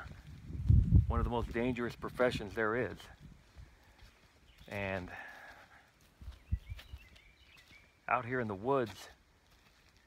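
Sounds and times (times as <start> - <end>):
dull low thumps: 0.0 - 1.7.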